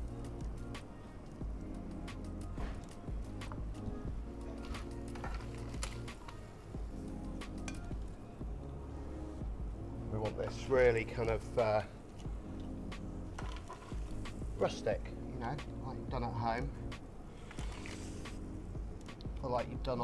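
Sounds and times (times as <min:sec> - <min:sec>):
background music with held chords: 0:00.0 - 0:20.0.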